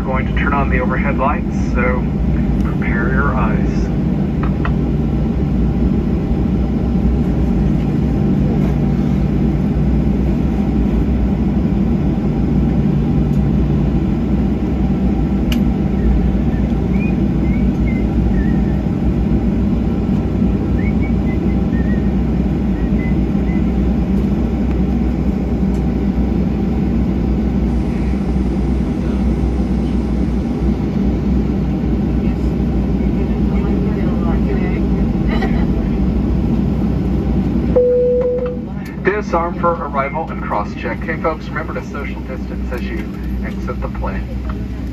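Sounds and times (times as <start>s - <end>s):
jet engine cabin hum: 0.0s - 44.9s.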